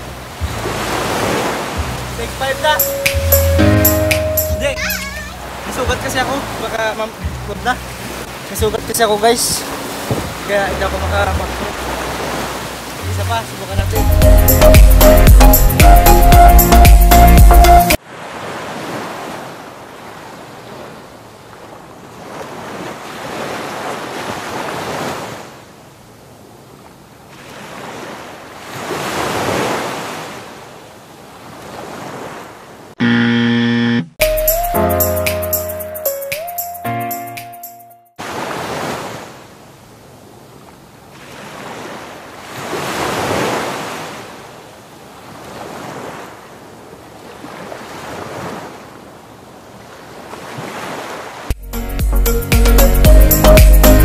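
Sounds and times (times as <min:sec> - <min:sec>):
small waves breaking on beach: 0:00.0 - 0:02.8, 0:04.8 - 0:13.8, 0:18.0 - 0:33.0, 0:38.2 - 0:51.5
surf washing on shore: 0:00.0 - 0:14.0, 0:18.0 - 0:33.0, 0:38.2 - 0:51.6.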